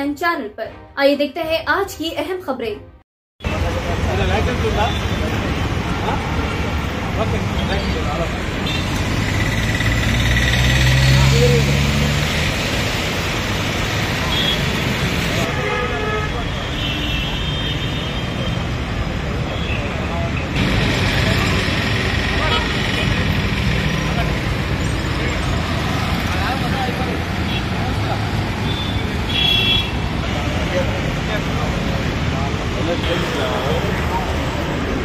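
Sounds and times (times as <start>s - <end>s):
road traffic: 3.4s - 35.0s
vehicle horn toot: 14.3s - 14.7s, 28.7s - 30.0s
people talking: 30.5s - 35.0s.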